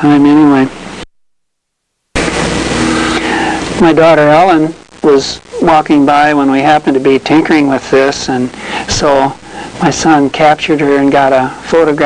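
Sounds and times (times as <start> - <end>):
man speaking: 0.0 - 0.7, 3.8 - 12.0
loud rushing noise: 2.2 - 3.9.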